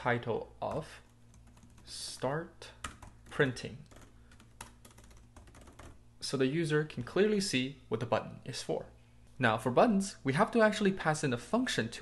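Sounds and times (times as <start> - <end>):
computer keyboard typing: 0.7 - 1.9, 2.8 - 6.0.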